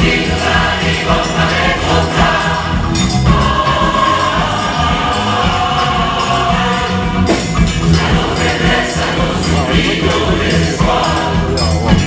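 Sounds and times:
large choir singing: 0:00.0 - 0:12.0.

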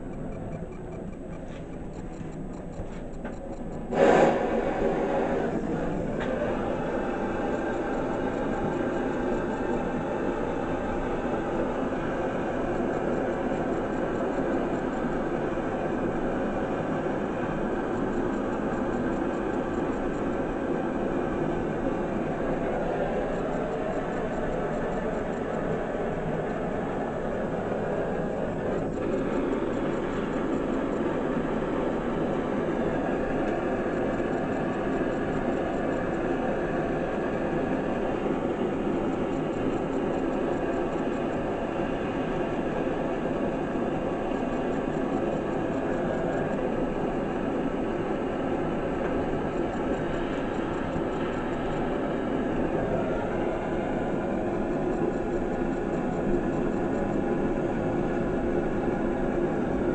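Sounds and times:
gas torch flame: 0:03.9 - 0:11.5.

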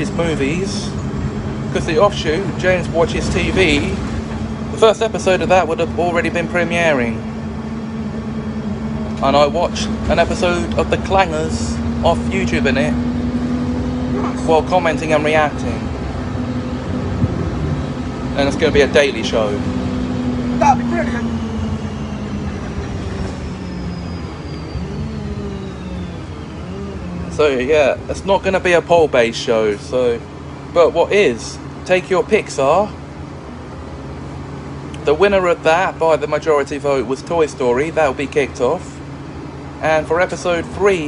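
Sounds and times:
bus engine and road noise: 0:00.0 - 0:41.0
faint high whine: 0:20.4 - 0:28.5.

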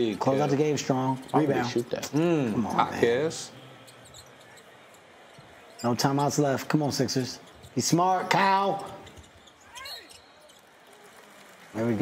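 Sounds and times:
crowd noise in a large hall: 0:00.0 - 0:12.0.

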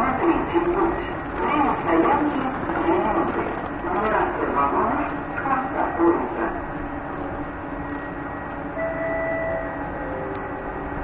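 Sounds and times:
standing train hum: 0:00.0 - 0:11.0
faint held tone: 0:07.9 - 0:10.6.

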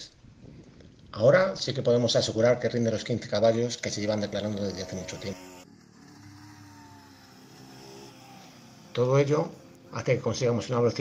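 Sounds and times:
faint motorcycle engine: 0:02.6 - 0:11.0.

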